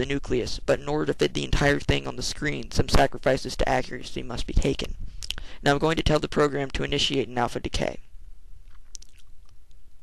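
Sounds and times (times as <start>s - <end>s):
low steady room rumble: 0.0s - 10.0s
faint soft clicks: 8.7s - 9.8s.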